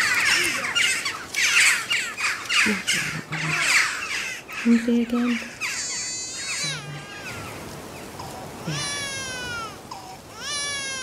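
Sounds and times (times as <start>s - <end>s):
newborn baby crying: 5.4s - 7.6s, 8.2s - 11.0s.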